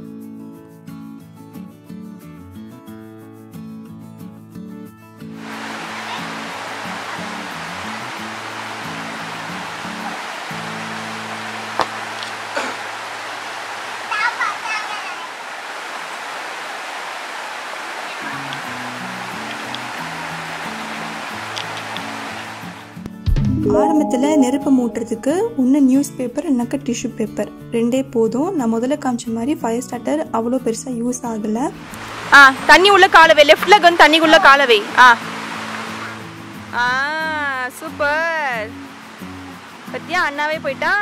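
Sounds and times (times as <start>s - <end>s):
water rushing in rocky stream: 5.4s - 14.6s, 15.5s - 23.0s, 31.8s - 36.7s, 38.8s - 40.6s
guitar music: 23.0s - 27.7s.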